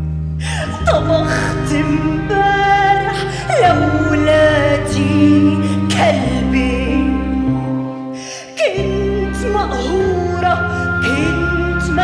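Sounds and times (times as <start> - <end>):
steady bass line: 0.0 - 12.0
gasp-like breath: 0.4 - 0.8
orchestra sustained notes: 0.4 - 12.0.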